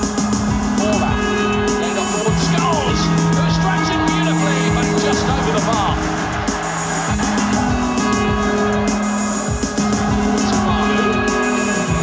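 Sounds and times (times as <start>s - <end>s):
low beats: 0.0s - 12.0s.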